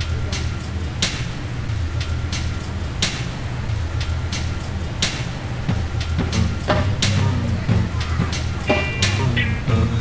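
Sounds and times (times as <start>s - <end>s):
sharp hits: 0.0s - 9.8s
steady low hum: 0.0s - 10.0s.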